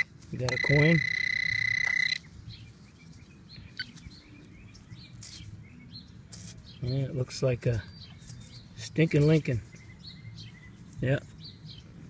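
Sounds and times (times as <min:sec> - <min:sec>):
high-pitched alarm tone: 0:00.0 - 0:02.2.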